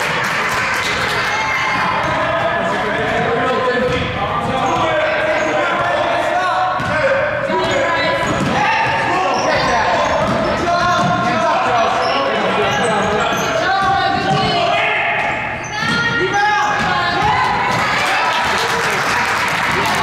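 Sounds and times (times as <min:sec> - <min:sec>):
voices shouting in a gym: 0:00.0 - 0:20.0
basketball bouncing on wooden floor: 0:07.6 - 0:11.4, 0:13.7 - 0:14.6, 0:15.2 - 0:17.9.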